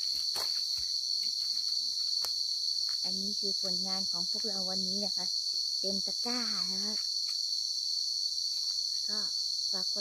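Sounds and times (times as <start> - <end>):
forest insects droning: 0.0 - 10.0.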